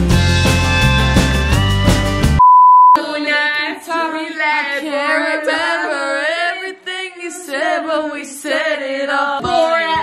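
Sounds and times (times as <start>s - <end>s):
loud bar music: 0.0s - 2.5s
censor beep tone: 2.4s - 3.0s
women singing together: 3.0s - 10.0s.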